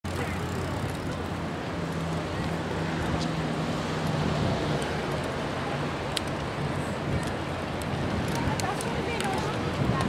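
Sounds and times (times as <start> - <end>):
traffic rumble: 0.0 - 10.0
faint voices: 5.4 - 10.0.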